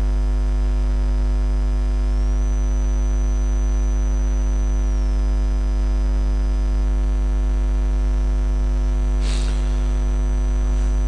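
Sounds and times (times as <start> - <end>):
electrical mains hum: 0.0 - 11.0
faint high whine: 0.0 - 11.0.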